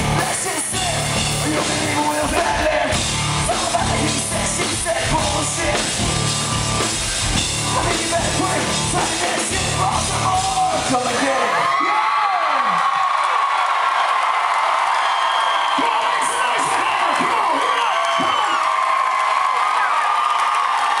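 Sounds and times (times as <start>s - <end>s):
rock band music: 0.0s - 11.6s
crowd cheering and screaming: 0.0s - 21.0s.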